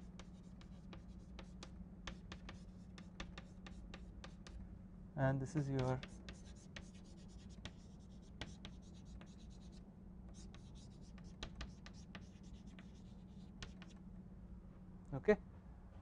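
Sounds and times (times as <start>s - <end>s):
chalk scratching on blackboard: 0.0s - 4.6s, 5.5s - 14.0s.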